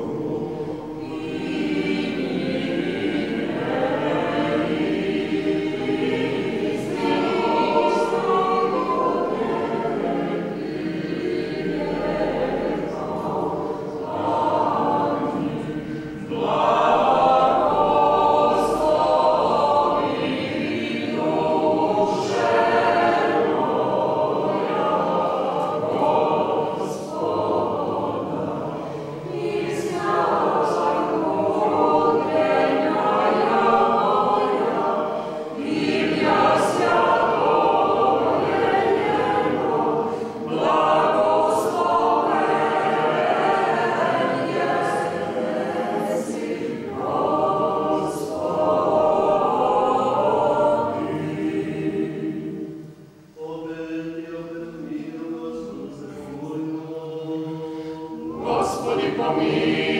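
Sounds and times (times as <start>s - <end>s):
choir singing unaccompanied: 0.0s - 59.9s.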